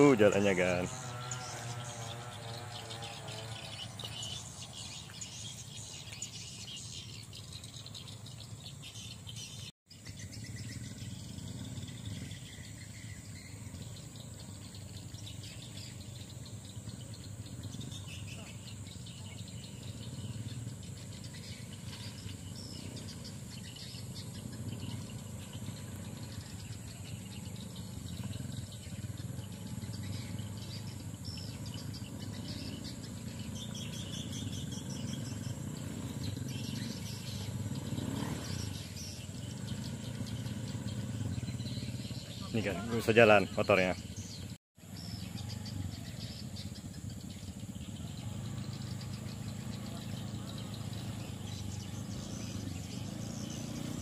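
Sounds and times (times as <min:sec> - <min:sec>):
birds chirping faintly: 0:00.0 - 0:54.0.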